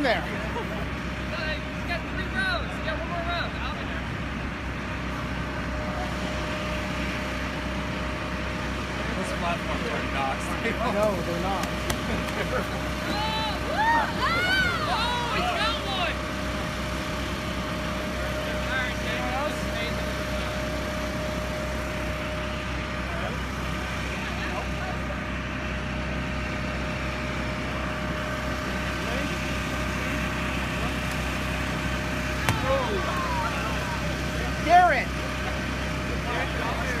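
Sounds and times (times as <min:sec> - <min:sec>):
voices and laughter: 0:00.1 - 0:01.2, 0:10.4 - 0:15.8, 0:32.6 - 0:37.0.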